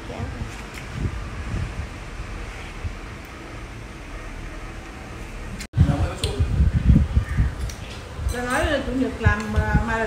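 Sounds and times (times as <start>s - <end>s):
steady fan-like hum: 0.0s - 10.0s.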